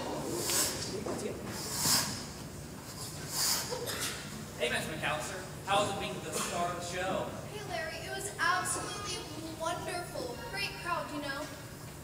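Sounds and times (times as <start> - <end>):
broom sweeping floor: 0.3 - 2.3.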